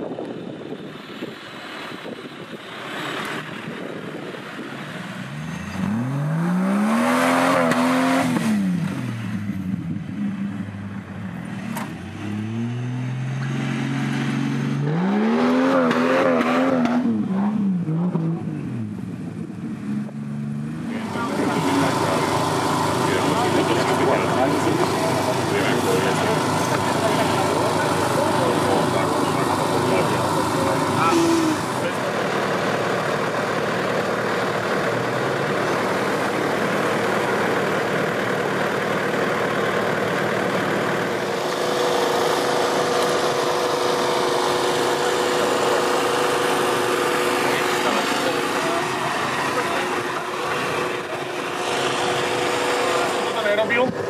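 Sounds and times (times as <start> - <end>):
off-road engine revving: 0.0 - 54.0
indistinct voices: 20.8 - 54.0.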